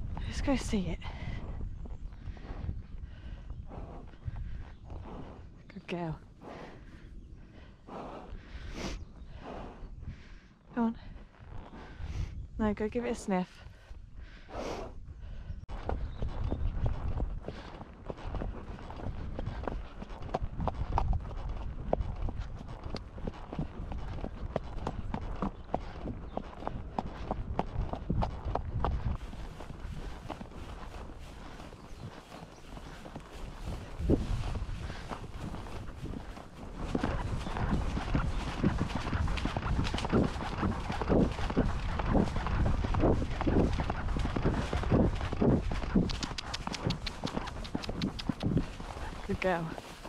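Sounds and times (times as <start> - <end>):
horse hoofbeats on dirt: 15.7 - 50.0.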